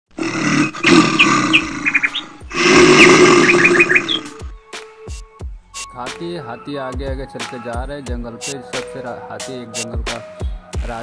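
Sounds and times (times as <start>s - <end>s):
animal roars: 0.1s - 4.5s.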